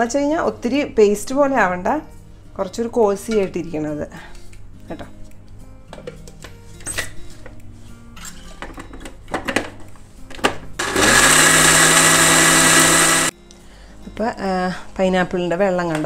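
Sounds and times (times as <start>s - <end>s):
mixer grinder whining: 10.8s - 13.3s.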